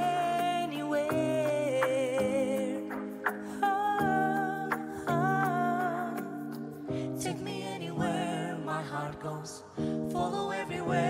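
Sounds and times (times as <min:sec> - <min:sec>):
wordless vocal notes: 0:00.0 - 0:11.0.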